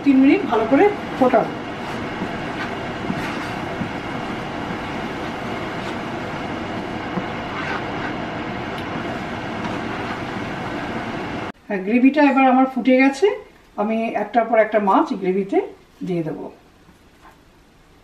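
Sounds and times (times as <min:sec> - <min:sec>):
spatula scraping a pan: 0:00.3 - 0:08.3, 0:08.9 - 0:10.4
sauce bubbling in a pan: 0:01.0 - 0:10.5.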